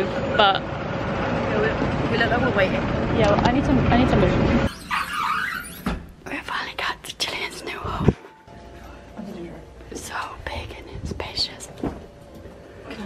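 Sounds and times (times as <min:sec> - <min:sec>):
people whispering: 0:06.3 - 0:08.2, 0:08.9 - 0:11.8.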